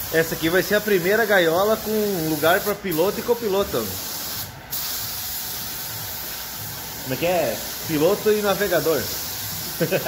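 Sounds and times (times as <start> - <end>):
paint spray gun hissing: 0.0 - 10.0.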